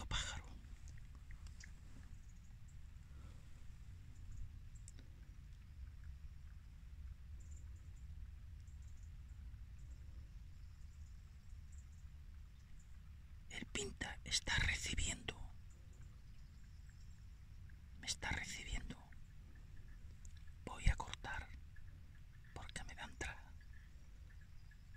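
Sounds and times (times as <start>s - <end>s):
person whispering: 0.0s - 0.9s, 13.5s - 15.6s, 18.0s - 19.2s, 20.6s - 21.6s, 22.5s - 23.6s.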